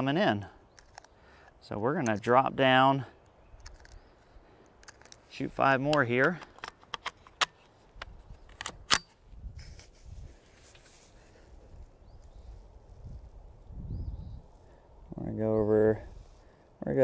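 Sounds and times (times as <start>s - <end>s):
rifle clicks and clacks: 5.8s - 9.1s.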